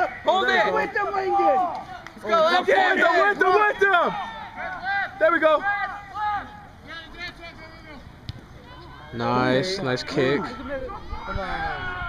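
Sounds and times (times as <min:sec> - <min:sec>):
distant voices shouting: 0:00.0 - 0:12.0
faint outdoor background noise: 0:00.0 - 0:12.0.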